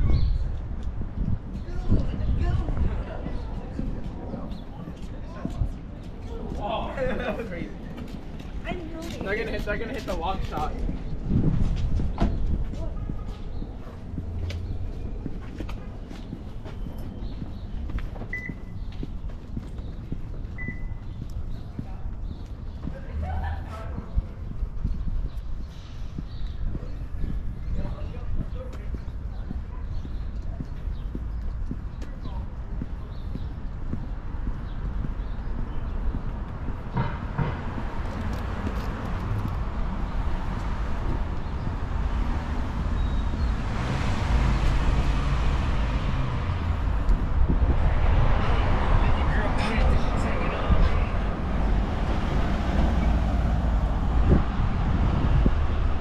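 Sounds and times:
street ambience: 0.0 - 56.0
traffic noise: 0.0 - 56.0
wind rumble on microphone: 0.0 - 56.0
footsteps on concrete: 0.5 - 56.0.

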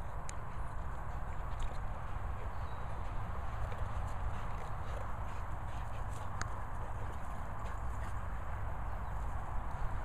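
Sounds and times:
dog panting: 0.0 - 8.5.

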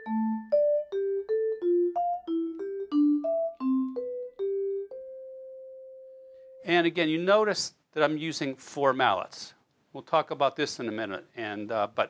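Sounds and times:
vibraphone notes: 0.0 - 6.8.

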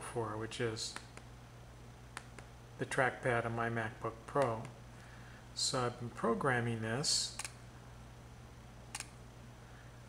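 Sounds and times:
sharp mechanical click: 8.9 - 9.2.

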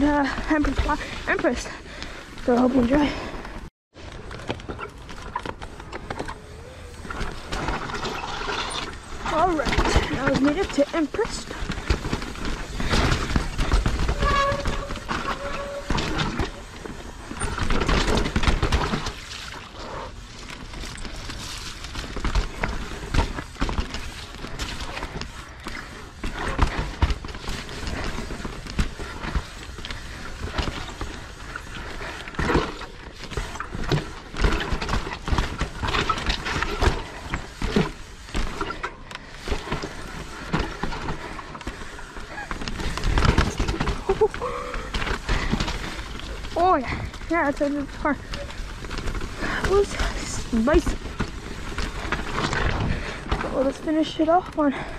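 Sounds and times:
bike rattling over rocks: 0.0 - 54.9
tyres rushing on dirt: 0.0 - 54.9.

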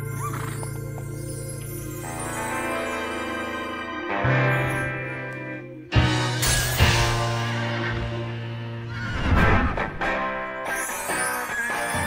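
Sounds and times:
instrumental music with held chords: 0.0 - 8.9.

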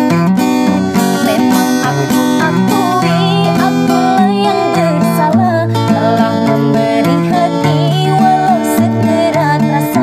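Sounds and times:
acoustic guitar chords: 0.0 - 10.0
woman singing slow melody: 0.7 - 10.0.

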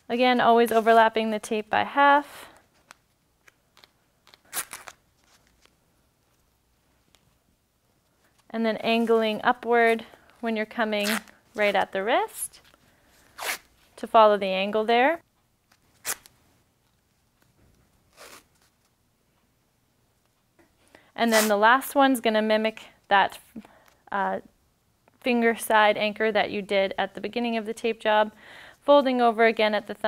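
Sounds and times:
tape tearing: 2.8 - 5.8, 11.0 - 11.9, 12.6 - 13.7, 15.7 - 16.4, 18.1 - 18.9, 21.3 - 21.6.

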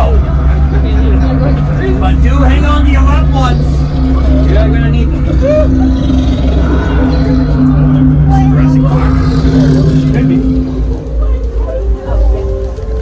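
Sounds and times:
low rumbling drone: 0.0 - 13.0
voices calling out: 0.0 - 13.0.

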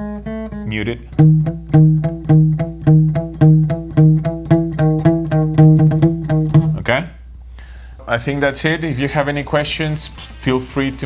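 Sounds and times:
muted acoustic guitar picking: 0.0 - 7.0.

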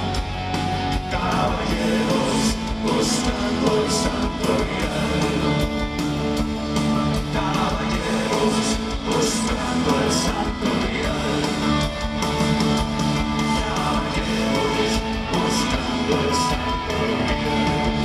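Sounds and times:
live rock band playing: 0.0 - 18.0.

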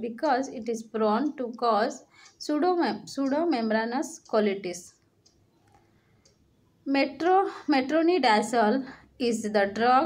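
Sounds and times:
woman speaking: 0.0 - 5.0, 6.9 - 10.0
faint small clicks: 2.1 - 2.4, 4.2 - 6.5.

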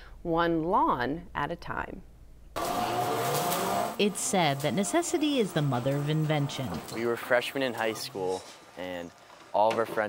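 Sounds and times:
electric mower motor whine: 2.6 - 8.8.

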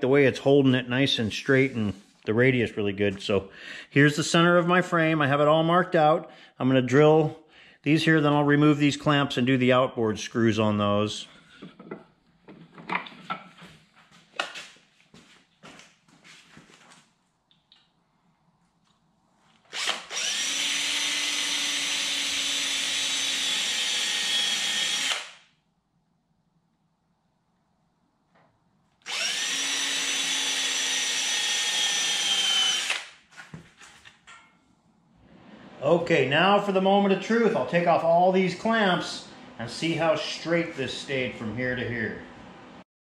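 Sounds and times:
cordless drill boring into wood: 19.7 - 25.5, 29.0 - 33.2.

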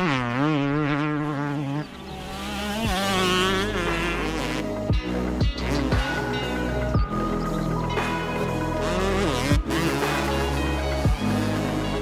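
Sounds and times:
drone propellers buzzing: 0.0 - 12.0.

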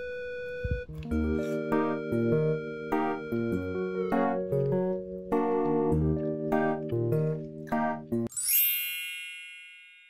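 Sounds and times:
light background music: 0.0 - 8.3
bright bell-like chime: 8.3 - 10.0.

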